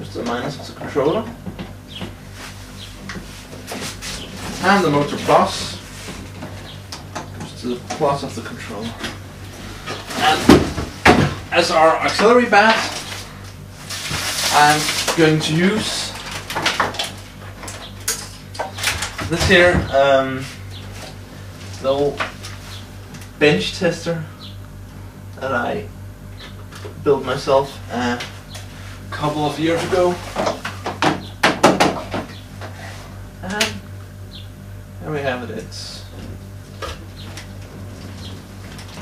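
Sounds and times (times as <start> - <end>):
steady low hum: 0.0 - 39.0
knocks on wooden workbench: 30.5 - 32.3.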